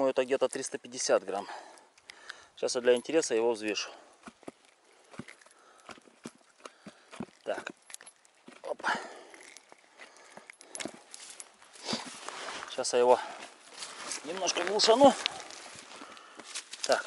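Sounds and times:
hands handling fish clicks and rustles: 0.0 - 17.0.

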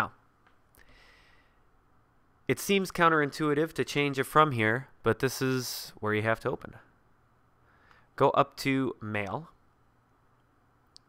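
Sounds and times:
person speaking: 0.0 - 0.3, 2.4 - 7.0, 8.2 - 9.6
soft breath: 0.8 - 1.8, 7.6 - 8.2
faint click: 10.4 - 11.0.

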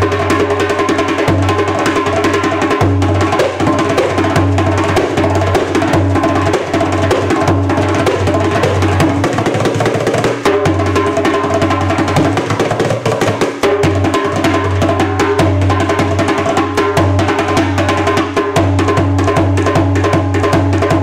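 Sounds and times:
hand drum solo: 0.0 - 21.0.

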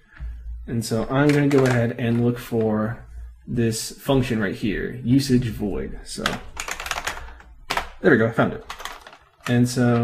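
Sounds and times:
computer keyboard typing: 1.2 - 2.7, 6.2 - 8.0, 8.6 - 10.0.

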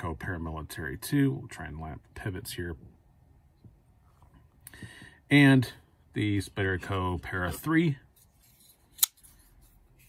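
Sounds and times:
folding knife click: 9.0 - 9.2.

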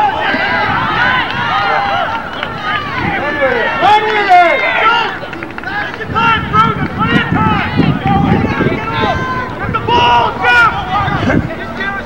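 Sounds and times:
people shouting and calling out: 0.0 - 12.0.

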